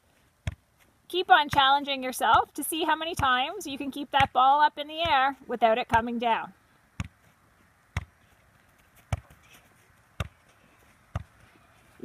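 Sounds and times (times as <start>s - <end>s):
foot kicking soccer ball: 0.4s - 2.5s, 6.9s - 11.5s.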